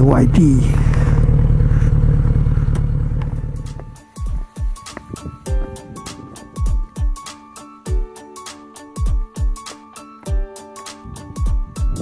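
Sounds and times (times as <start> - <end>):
motorcycle engine at low revs: 0.0 - 5.5
music: 3.2 - 12.0
wind noise: 4.3 - 6.9, 11.0 - 12.0.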